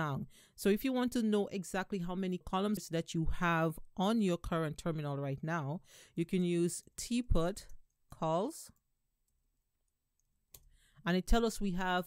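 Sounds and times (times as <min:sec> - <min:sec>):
short breath: 0:05.8 - 0:06.2, 0:10.7 - 0:11.0.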